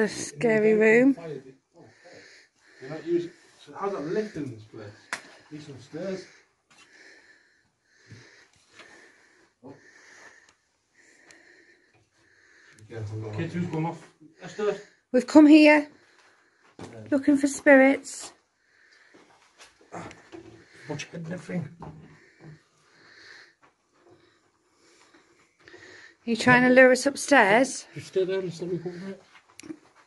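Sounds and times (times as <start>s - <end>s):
wheezy breathing: 1.8s - 13.0s, 18.6s - 21.2s, 22.0s - 26.3s.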